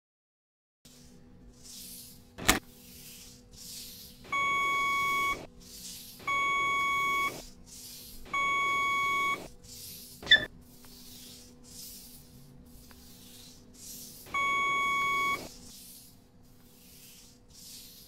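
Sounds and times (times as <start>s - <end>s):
faint steady hum: 0.9s - 18.0s
sharp click: 2.4s - 2.6s
long electronic beeps: 4.4s - 5.4s, 6.3s - 7.4s, 8.4s - 9.4s, 14.4s - 15.4s.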